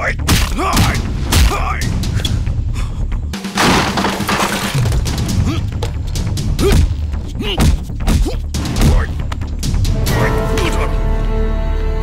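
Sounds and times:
film background music: 0:00.0 - 0:12.0
glass shattering: 0:03.5 - 0:05.2.

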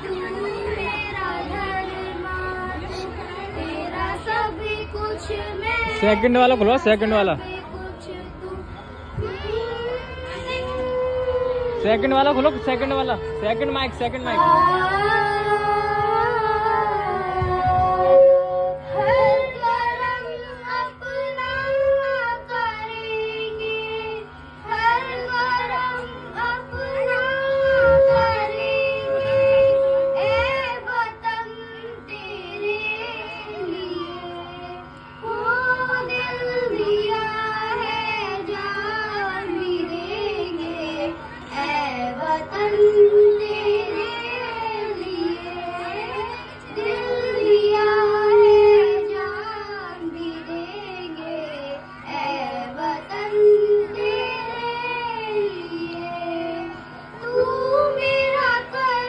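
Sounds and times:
girls singing into a microphone: 0:00.0 - 0:06.2, 0:07.4 - 0:11.8, 0:14.2 - 0:59.0.

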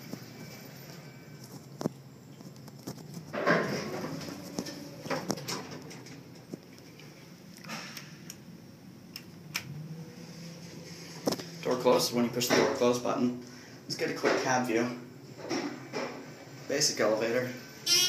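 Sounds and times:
elevator low hum: 0:00.0 - 0:18.0
elevator doors sliding open: 0:03.2 - 0:06.6.

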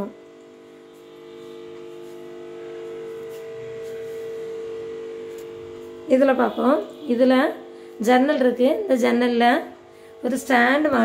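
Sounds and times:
electrical appliance hum: 0:00.0 - 0:11.0.

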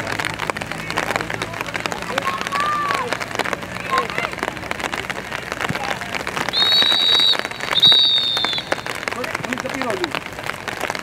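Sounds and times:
referee's whistle blasts: 0:06.5 - 0:08.8.

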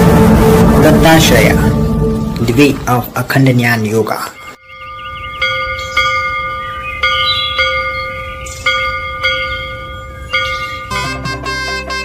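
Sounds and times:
bells ringing: 0:02.4 - 0:12.0.

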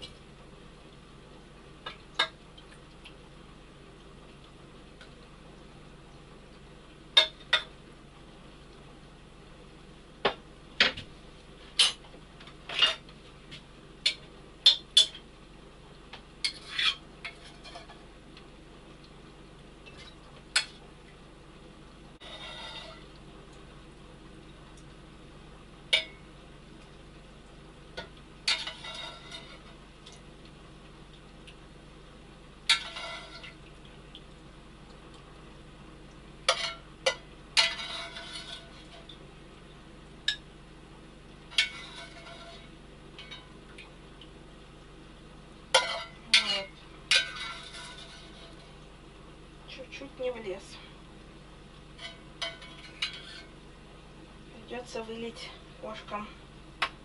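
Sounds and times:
low steady hum: 0:00.0 - 0:57.0
scraping in a pot: 0:16.4 - 0:18.1, 0:22.2 - 0:23.2, 0:28.4 - 0:29.8, 0:32.7 - 0:33.6, 0:36.5 - 0:39.2, 0:41.5 - 0:43.6, 0:45.7 - 0:48.8, 0:51.9 - 0:53.6.

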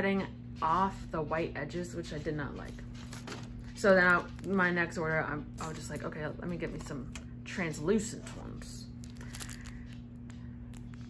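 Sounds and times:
low hum: 0:00.2 - 0:11.0
plastic package crinkling: 0:08.9 - 0:11.0.

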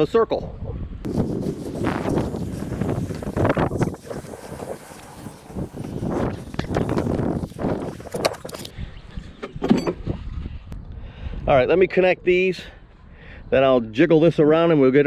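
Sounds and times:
edging dragged across grass: 0:01.1 - 0:08.7.

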